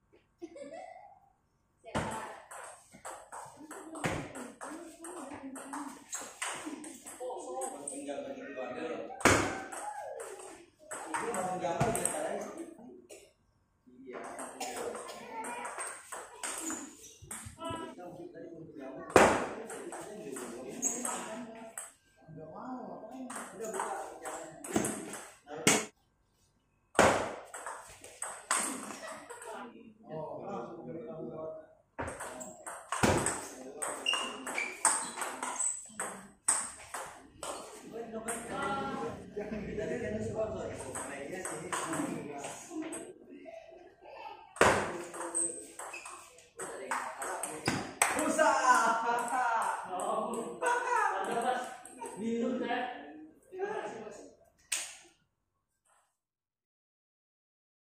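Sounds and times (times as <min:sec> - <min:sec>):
table tennis ball rally: 0:01.9 - 0:08.0, 0:09.1 - 0:12.7, 0:14.1 - 0:17.9, 0:19.1 - 0:22.0, 0:23.3 - 0:26.0, 0:27.0 - 0:29.6, 0:32.0 - 0:39.1, 0:40.7 - 0:43.1, 0:44.6 - 0:52.2
voices: 0:03.4 - 0:12.9.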